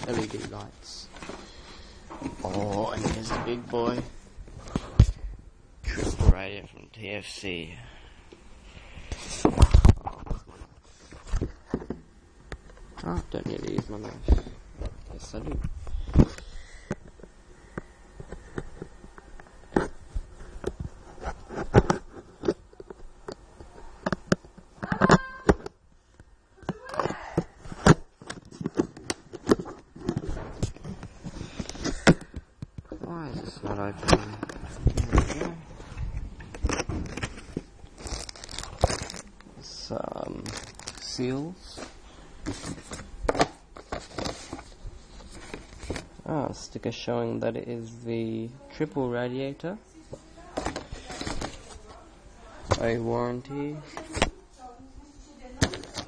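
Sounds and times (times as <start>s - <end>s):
plastic and cardboard rustling: 0.0s - 5.3s, 8.9s - 17.3s, 26.6s - 46.6s, 50.0s - 56.0s
cardboard box being opened: 36.5s - 39.2s.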